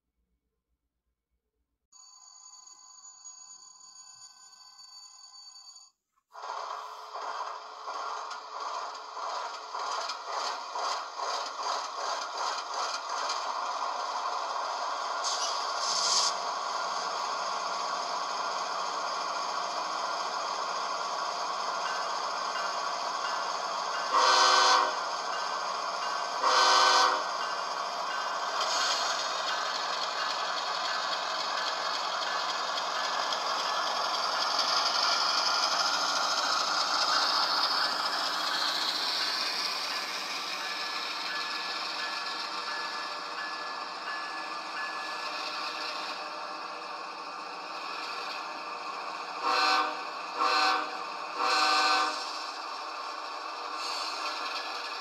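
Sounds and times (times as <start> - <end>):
model train diesel engine sound: 6.2 - 55.0
train horn blasts: 24.1 - 25.0, 26.4 - 27.3, 49.4 - 52.4.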